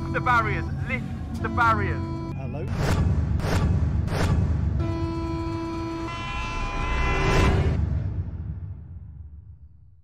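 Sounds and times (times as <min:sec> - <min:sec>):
train horn two-tone blast: 0:04.8 - 0:07.8.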